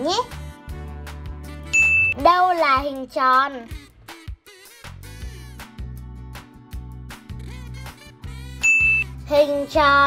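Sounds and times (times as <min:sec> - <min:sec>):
background music with steady beat: 0:00.0 - 0:10.0
bright ding chime: 0:01.8 - 0:02.2, 0:08.6 - 0:09.1.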